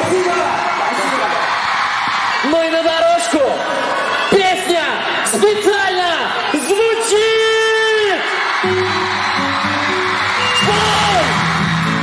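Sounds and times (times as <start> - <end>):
crowd hubbub: 8.5 - 12.0.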